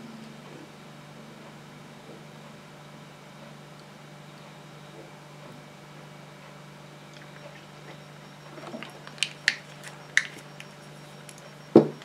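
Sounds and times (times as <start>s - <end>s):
faint steady hum: 0.0s - 12.0s
glass bottle knock on table: 11.8s - 12.0s.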